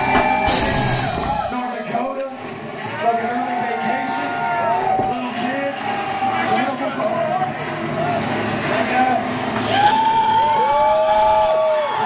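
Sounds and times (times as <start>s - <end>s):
death metal band playing: 0.0s - 3.6s.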